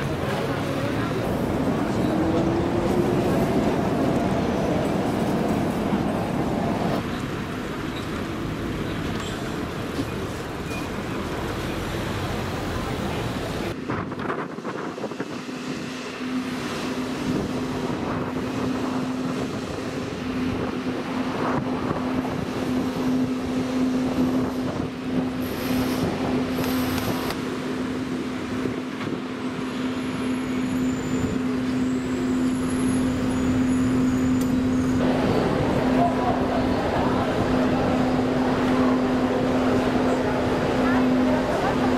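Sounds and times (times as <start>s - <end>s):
vehicles passing: 0.0s - 41.9s.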